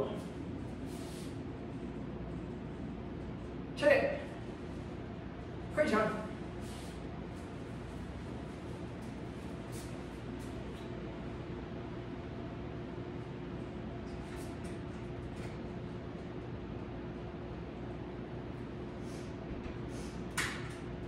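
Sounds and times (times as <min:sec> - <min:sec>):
background hum with hiss: 0:00.0 - 0:21.0.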